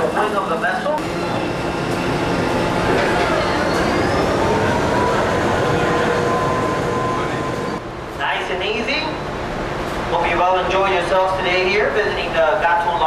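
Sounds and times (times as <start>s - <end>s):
ship machinery rumble: 0.0s - 13.0s.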